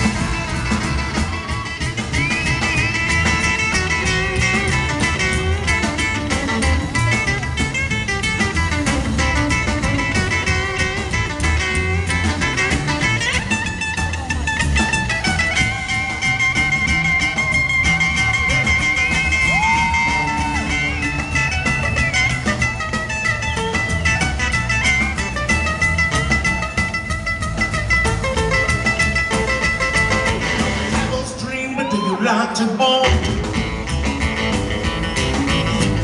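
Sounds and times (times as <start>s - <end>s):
strummed acoustic guitar: 0.0s - 32.3s, 33.0s - 36.0s
drums: 0.0s - 36.0s
electric guitar lead: 0.0s - 36.0s
upright bass: 0.0s - 36.0s.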